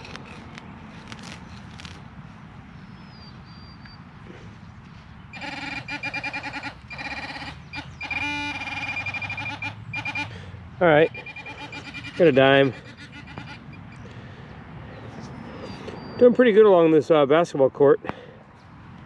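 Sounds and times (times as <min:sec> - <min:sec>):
pinpointer buzzing in pulses: 0:05.4 - 0:10.3, 0:11.1 - 0:13.9.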